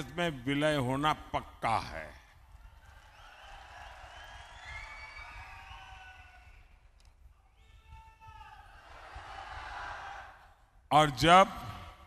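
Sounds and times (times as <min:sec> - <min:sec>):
crowd cheering: 0:02.5 - 0:10.7.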